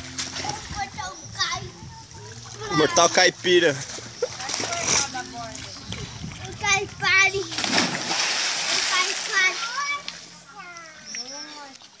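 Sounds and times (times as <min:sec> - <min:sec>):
body splashing into pool: 0:07.5 - 0:09.6.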